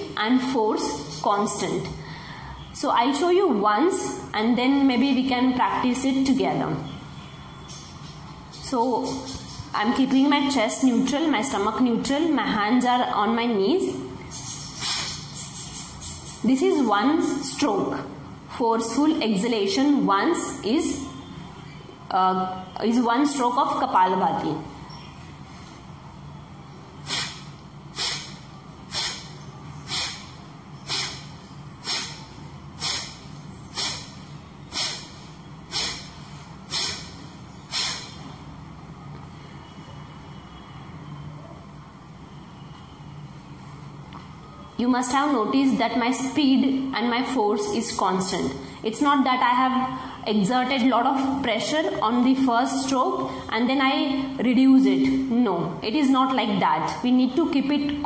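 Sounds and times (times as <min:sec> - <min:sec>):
sharp nasal exhalation: 0:14.6 - 0:15.5, 0:27.0 - 0:38.3.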